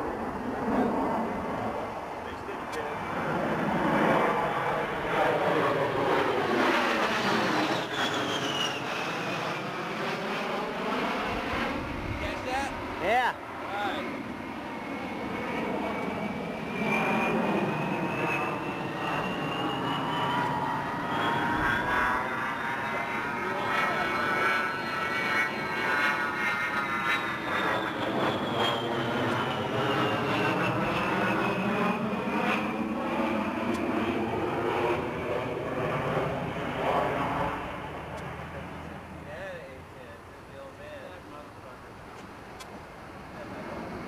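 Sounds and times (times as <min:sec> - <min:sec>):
jet engines whining overhead: 0:00.0 - 0:44.0
jet rumble: 0:00.0 - 0:44.0.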